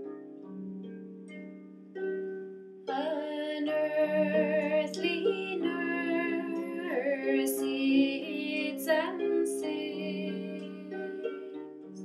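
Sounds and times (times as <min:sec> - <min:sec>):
harp plucked slowly: 0:00.0 - 0:12.0
woman singing folk ballad: 0:02.9 - 0:11.2.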